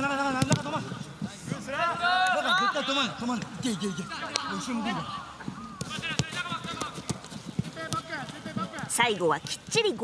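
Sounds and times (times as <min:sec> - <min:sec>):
players shouting: 0:00.0 - 0:09.1
football being kicked: 0:00.4 - 0:00.7, 0:05.7 - 0:08.8.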